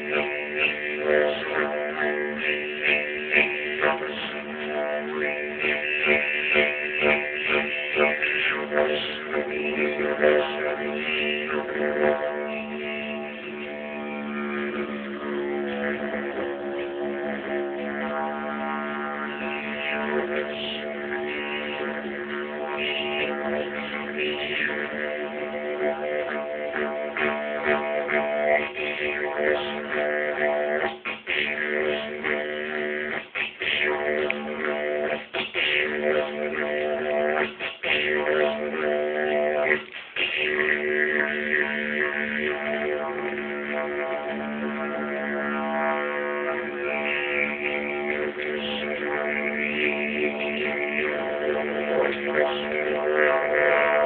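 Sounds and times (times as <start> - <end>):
didgeridoo drone: 0.0 - 54.0.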